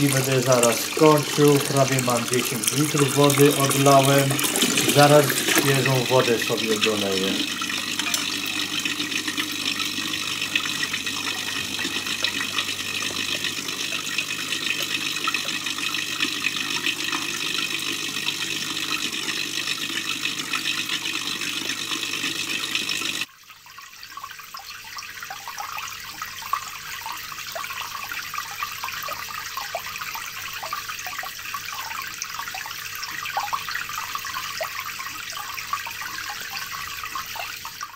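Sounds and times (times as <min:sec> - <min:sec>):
water gurgling and splashing: 0:00.0 - 0:23.3
water running: 0:00.0 - 0:37.9.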